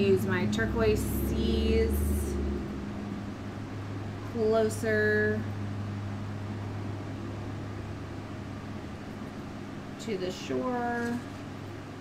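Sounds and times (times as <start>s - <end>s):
deep rumble: 0.0s - 10.0s
low mechanical hum: 0.0s - 12.0s.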